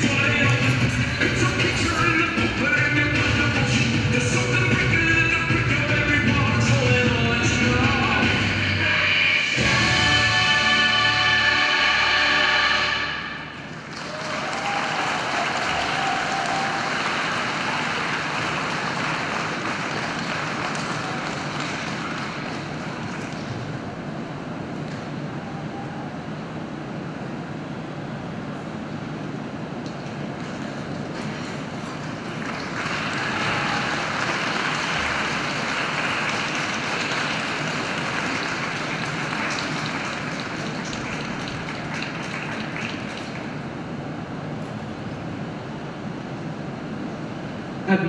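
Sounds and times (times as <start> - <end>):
audience applauding: 13.6 - 23.7, 30.2 - 43.7.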